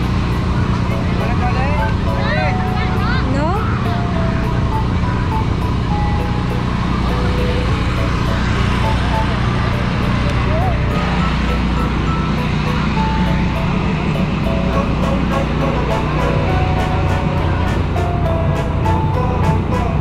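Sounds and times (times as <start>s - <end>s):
music: 0.0s - 20.0s
portable generator droning: 0.0s - 20.0s
voices: 0.2s - 20.0s.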